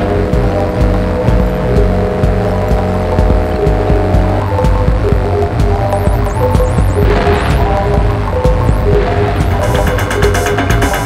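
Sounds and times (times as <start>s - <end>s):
synthesizer blips: 0.0s - 11.0s
throbbing bass drone: 0.0s - 11.0s
rapid high chirps: 4.2s - 11.0s
burst of noise: 6.2s - 11.0s.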